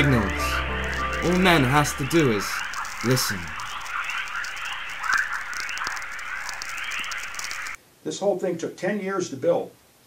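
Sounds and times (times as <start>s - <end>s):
sharp clicks: 0.0s - 7.8s
small chirps and crackle: 0.0s - 7.8s.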